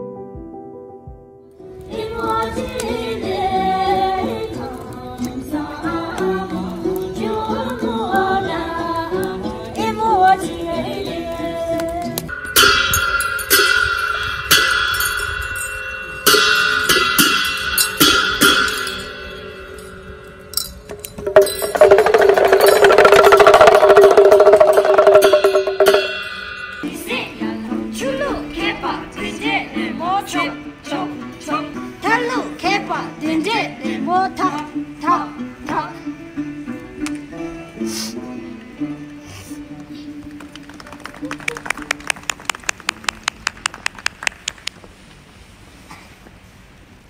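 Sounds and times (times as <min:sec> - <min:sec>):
steady held note: 0:12.3 - 0:27.7
sharp clacks from dancers: 0:20.9 - 0:26.2, 0:39.8 - 0:44.9
fast drum roll: 0:21.2 - 0:26.4.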